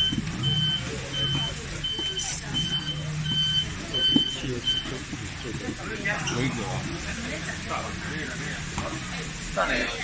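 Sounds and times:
truck warning beeper: 0:00.0 - 0:05.6.

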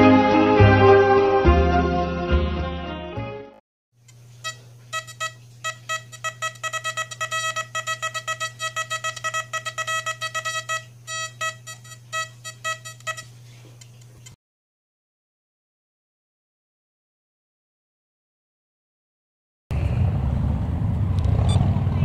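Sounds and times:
steady low hum: 0:04.0 - 0:14.4
short electronic beeps: 0:04.4 - 0:13.3.

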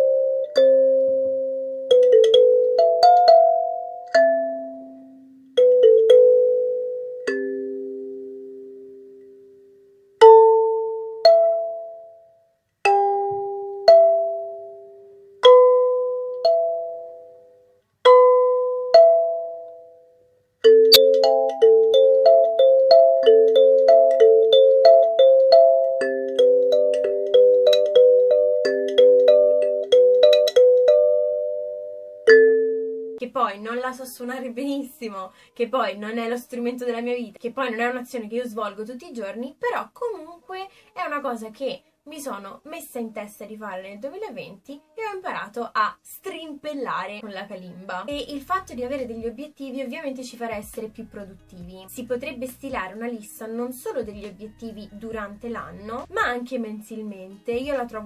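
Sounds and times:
kalimba notes: 0:00.0 - 0:33.2.

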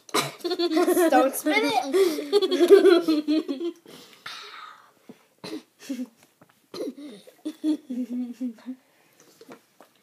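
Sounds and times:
girls coughing: 0:00.1 - 0:00.6, 0:05.4 - 0:06.0, 0:06.7 - 0:07.3
girls laughing: 0:00.4 - 0:01.3, 0:01.9 - 0:03.8.

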